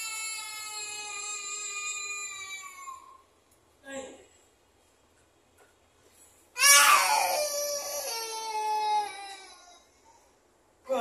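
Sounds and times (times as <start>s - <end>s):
toddler crying: 0.0s - 3.2s, 6.6s - 10.0s.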